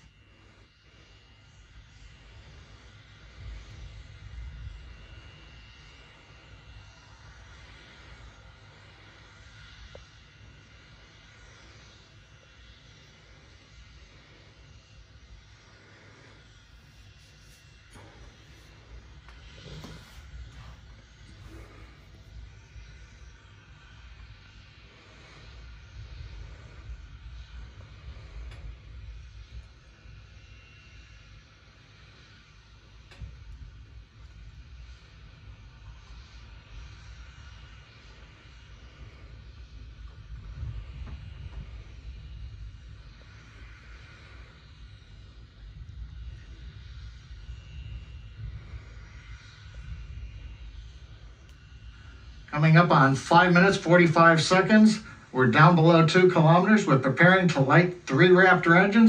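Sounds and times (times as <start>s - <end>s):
faint hiss: 0.0s - 59.0s
low uneven rumble: 0.0s - 59.0s.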